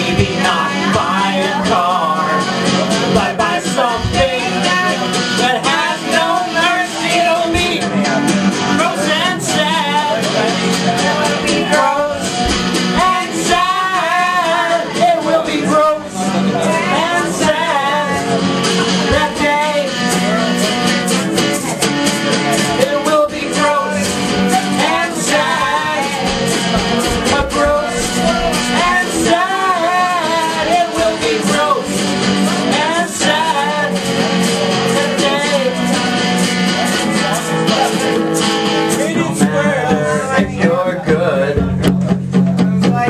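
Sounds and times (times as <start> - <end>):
person singing: 0.0 - 43.0
strummed acoustic guitar: 0.0 - 43.0.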